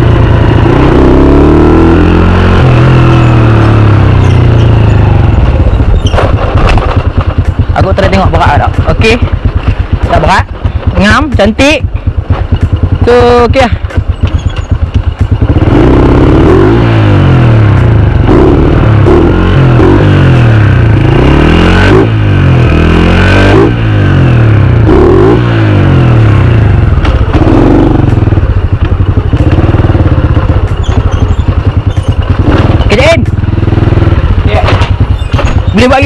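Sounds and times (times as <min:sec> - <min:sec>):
motorcycle engine revving: 0:00.0 - 0:36.0.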